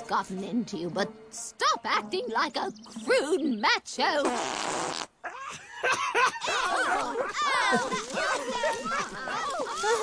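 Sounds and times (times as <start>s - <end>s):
cartoon fart sound effect: 4.2s - 5.2s.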